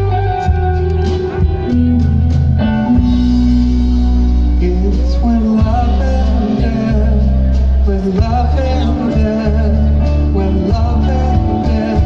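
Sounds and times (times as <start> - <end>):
drums: 0.0 - 12.0
electric guitars sustained notes: 0.0 - 12.0.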